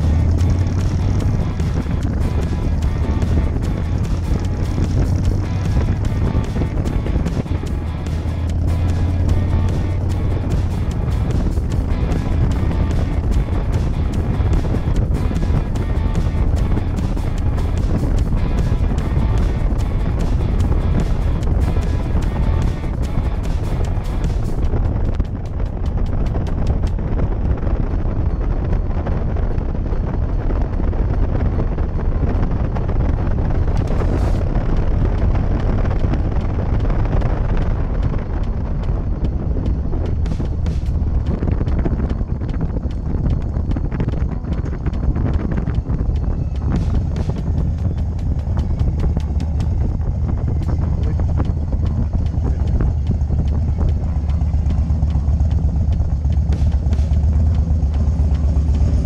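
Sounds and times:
background music: 0.0 - 59.0
motorcycle running: 0.0 - 59.0
wind on microphone: 0.0 - 59.0.

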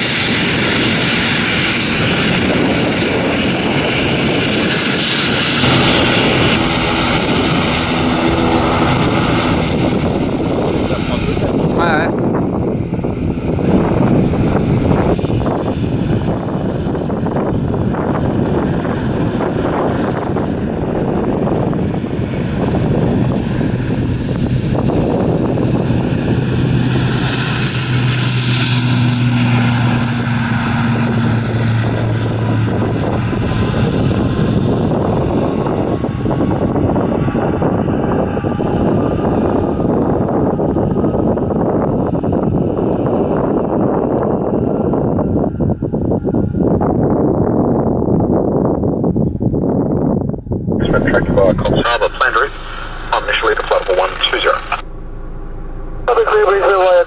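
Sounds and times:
turboprop aircraft taking off: 0.0 - 57.0.

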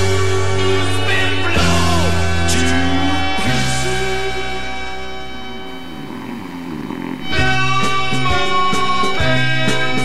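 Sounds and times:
held chord ringing: 2.1 - 10.0.

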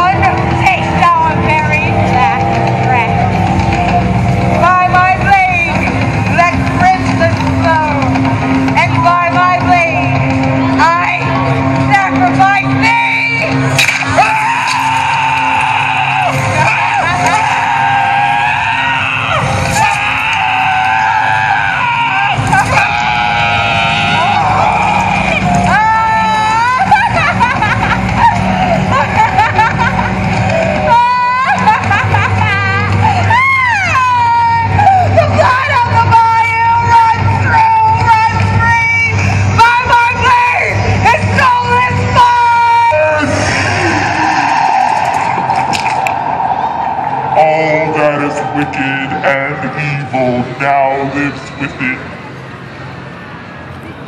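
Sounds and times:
low steady drone: 0.0 - 54.0
person screaming: 14.1 - 27.1.

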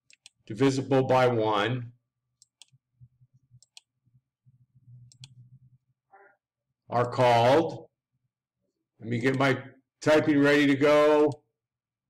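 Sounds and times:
computer mouse clicks: 0.0 - 0.4, 2.4 - 2.8, 3.6 - 4.0, 5.0 - 5.5.

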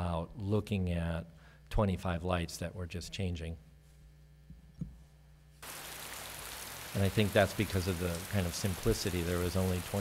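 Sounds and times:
faint low hum: 0.0 - 5.6
steady hiss: 5.6 - 10.0.

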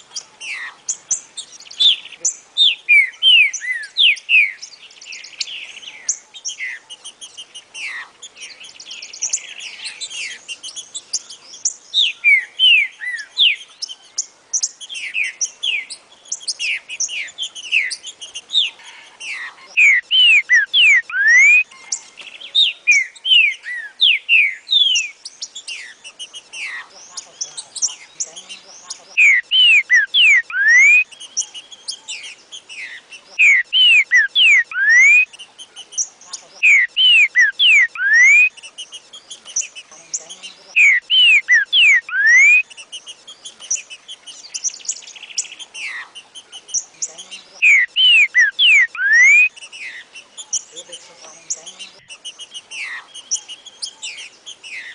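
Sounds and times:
bird singing whistled notes: 0.0 - 54.9
high chirping: 0.0 - 54.9.

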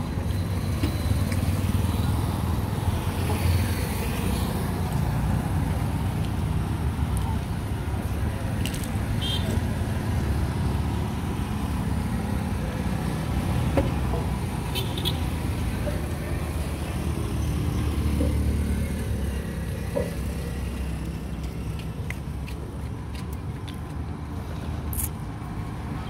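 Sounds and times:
traffic and motorcycles rumbling: 0.0 - 26.0.

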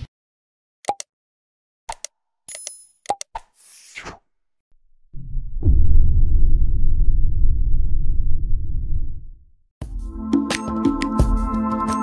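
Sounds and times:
deep rumbling music intro: 5.0 - 9.6.

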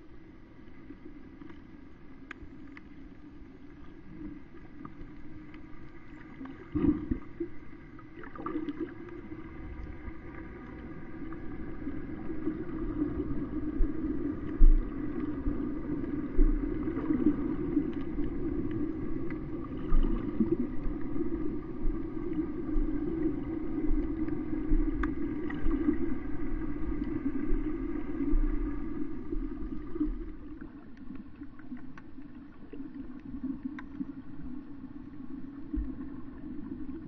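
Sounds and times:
muffled underwater drone: 0.0 - 37.0
faint clicks: 1.3 - 7.2, 22.1 - 26.0, 29.7 - 34.6.

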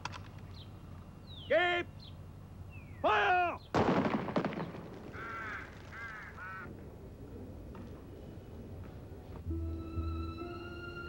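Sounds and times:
harsh bird calls: 0.5 - 3.8, 4.6 - 6.7
shouted command: 1.5 - 1.9, 3.0 - 3.6
volley of rifle shots: 3.7 - 6.7.

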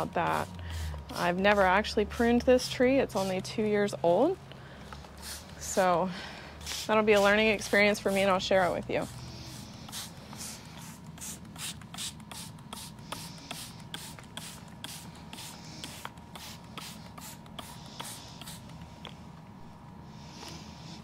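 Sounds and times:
spray bottle squirting: 5.2 - 5.6, 6.6 - 8.4, 9.0 - 18.7.

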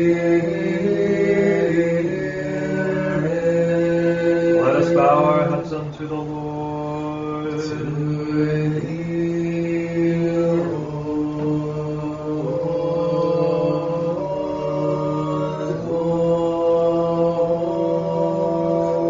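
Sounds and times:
men chanting: 0.0 - 19.0.

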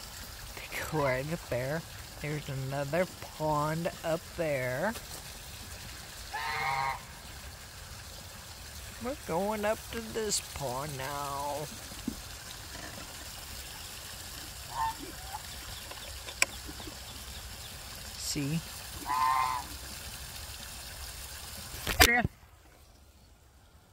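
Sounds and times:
water trickling into pond: 0.0 - 23.9
goose honking: 6.3 - 7.2, 14.7 - 15.5, 19.0 - 19.8.

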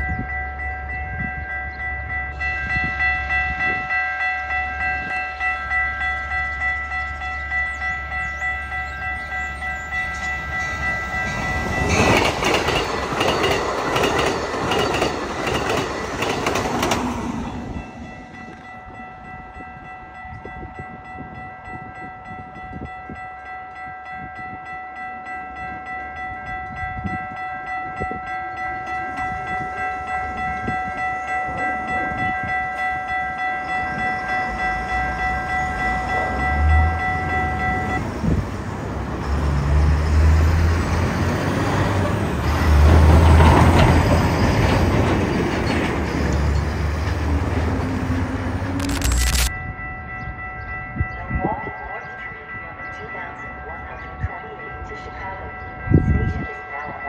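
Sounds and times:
crossing warning bell ringing: 0.0 - 57.0.

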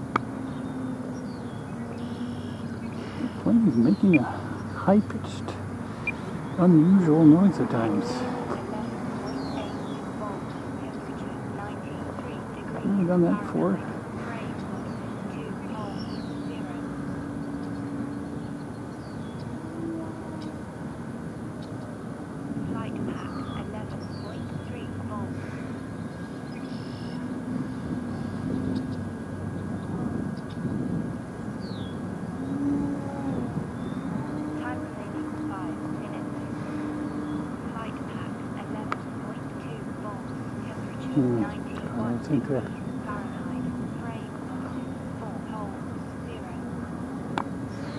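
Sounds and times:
wind noise: 27.2 - 38.3.

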